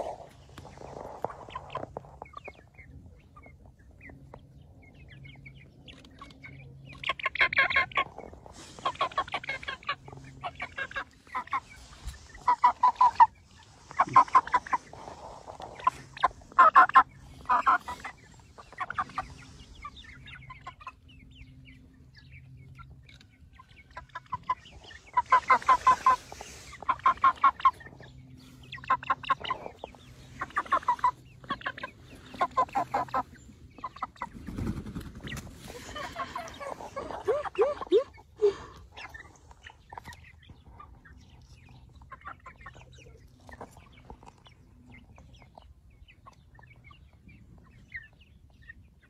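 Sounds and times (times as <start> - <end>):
young chickens calling: 0.0 - 49.0.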